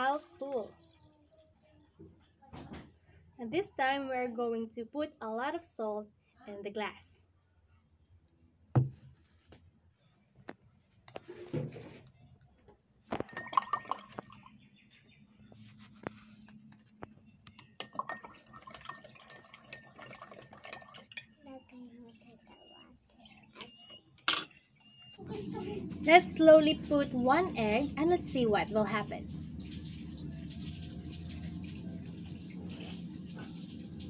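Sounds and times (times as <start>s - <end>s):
spoon clinking against glass: 13.2s - 14.5s, 17.5s - 21.4s.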